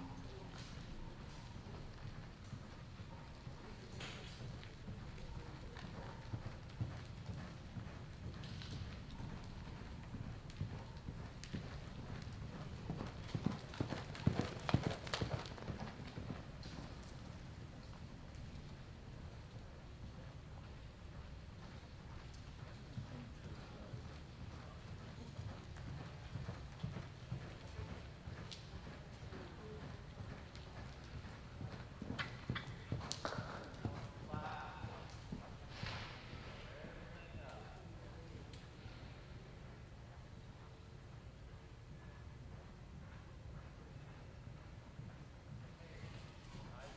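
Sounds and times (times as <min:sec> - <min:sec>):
horse hoofbeats on dirt: 0:00.3 - 0:36.9.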